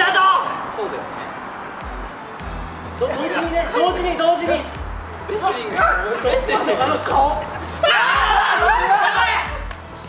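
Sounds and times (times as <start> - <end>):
people yelping and shouting: 5.3 - 9.8.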